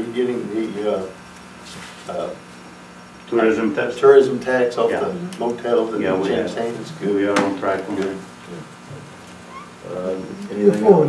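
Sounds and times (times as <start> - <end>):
man speaking: 3.4 - 8.7, 9.8 - 11.0.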